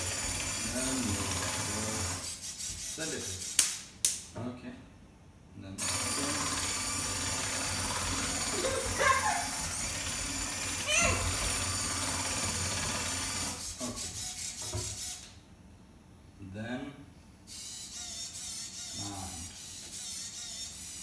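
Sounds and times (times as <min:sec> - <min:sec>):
robot servo motors whirring: 0:17.5 - 0:21.0.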